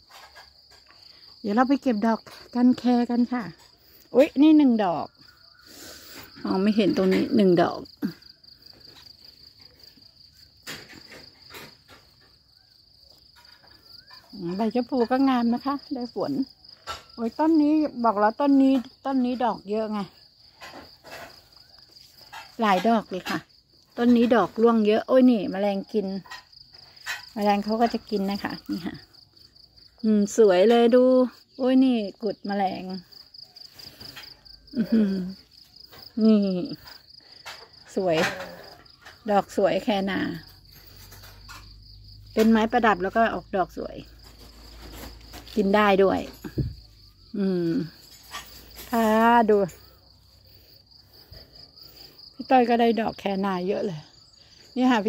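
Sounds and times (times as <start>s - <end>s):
insects trilling: 0.0s - 55.0s.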